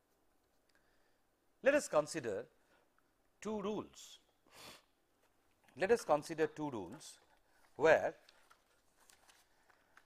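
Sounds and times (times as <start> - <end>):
man speaking: 1.6 - 2.6, 3.4 - 4.3, 5.8 - 8.3.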